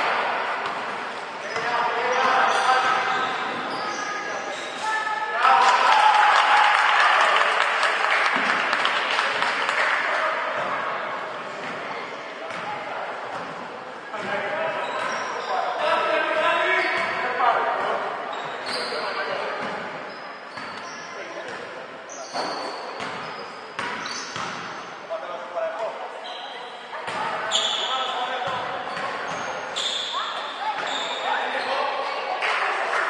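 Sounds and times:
shoe squeaks: 0:01.1 - 0:05.1, 0:14.7 - 0:15.8, 0:16.5 - 0:17.3, 0:18.3 - 0:24.9, 0:26.2 - 0:32.0.

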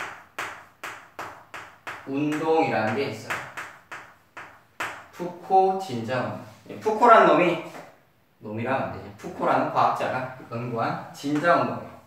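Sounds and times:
chalk tapping on chalkboard: 0:00.0 - 0:05.2.

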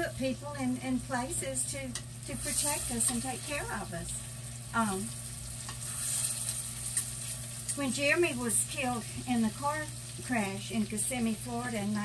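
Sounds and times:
food sizzling in a pot: 0:00.0 - 0:12.0.

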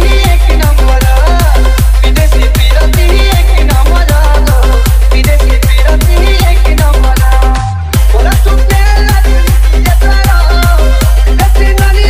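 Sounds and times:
bass kick drum: 0:00.0 - 0:12.0
dj remix music: 0:00.0 - 0:12.0.

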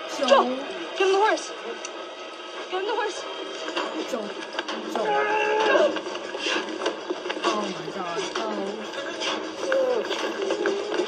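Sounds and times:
drawn-out cry: 0:05.0 - 0:06.0.

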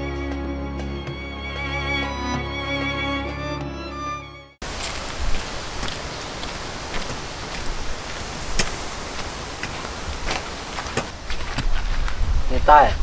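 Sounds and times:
violin music: 0:00.0 - 0:04.6
outdoor ambient noise: 0:04.6 - 0:13.0.

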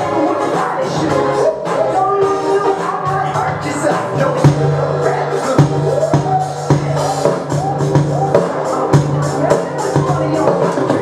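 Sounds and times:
live band music: 0:00.0 - 0:11.0
electronic drum kick and snare: 0:02.2 - 0:11.0.

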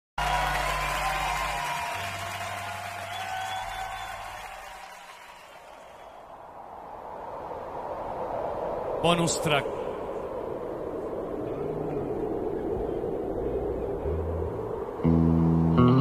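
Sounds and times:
audience applause: 0:00.2 - 0:06.3.

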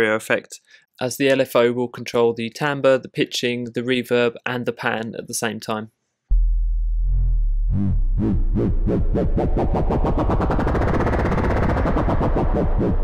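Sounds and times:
pulsing synthesizer tone: 0:06.3 - 0:13.0.

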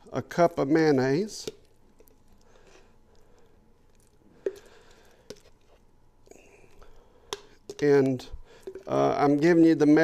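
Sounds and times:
wet squishing of mayonnaise: 0:00.4 - 0:09.6.

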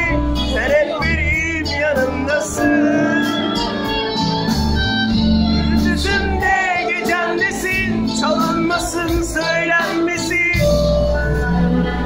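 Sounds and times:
acoustic guitars: 0:00.0 - 0:12.0
bass guitar: 0:00.0 - 0:12.0
voices singing: 0:05.7 - 0:12.0.

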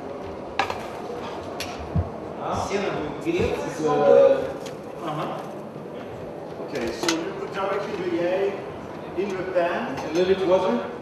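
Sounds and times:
room noise: 0:00.0 - 0:11.0.

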